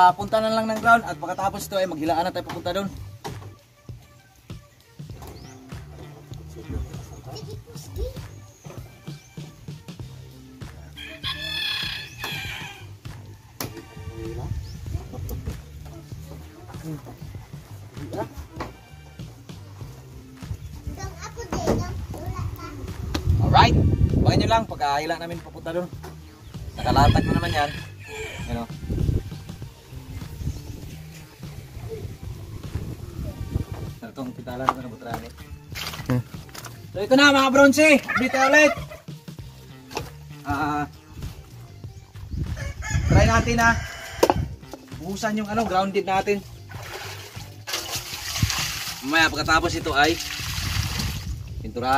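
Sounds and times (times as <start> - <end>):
background music with low notes: 0.0 - 51.9
people and children talking: 5.5 - 9.7, 13.6 - 19.9, 20.5 - 24.5, 28.4 - 34.5
rooster crowing: 11.0 - 14.6, 26.8 - 29.6, 42.5 - 44.6.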